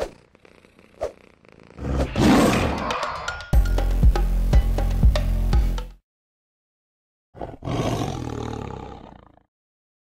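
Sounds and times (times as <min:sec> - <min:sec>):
tiger roaring: 0:07.4 - 0:09.5.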